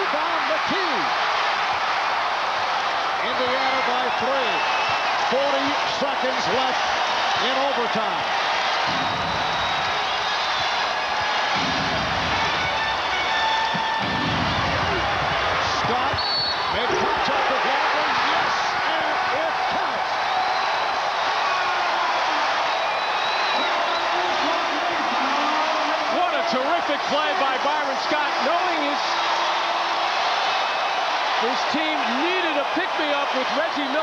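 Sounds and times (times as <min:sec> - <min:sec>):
arena crowd cheering: 0:00.0 - 0:34.0.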